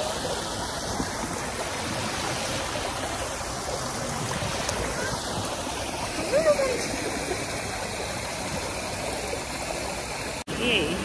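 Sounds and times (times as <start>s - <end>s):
water cascading into pool: 0.0s - 11.0s.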